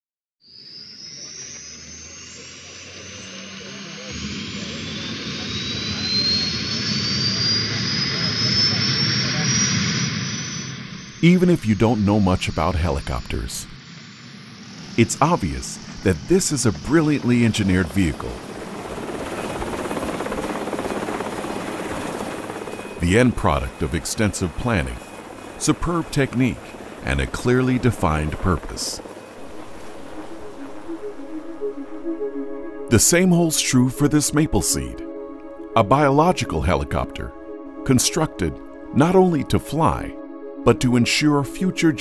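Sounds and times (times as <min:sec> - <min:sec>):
helicopter turbine whine: 0:00.5 - 0:42.0.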